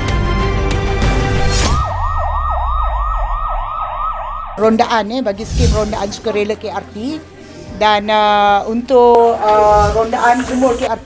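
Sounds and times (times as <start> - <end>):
music: 0.0 - 2.3, 4.6 - 11.0
fast yelp siren: 1.6 - 4.6.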